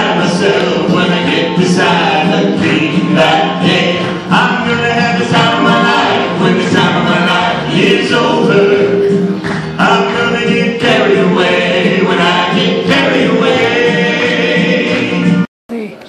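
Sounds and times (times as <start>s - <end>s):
male group singing in harmony: 0.0s - 15.5s.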